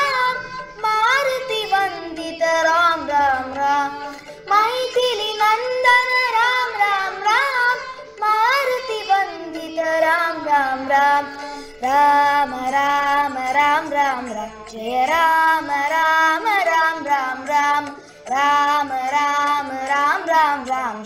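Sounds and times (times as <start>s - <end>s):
girls singing devotional song: 0.0s - 21.0s.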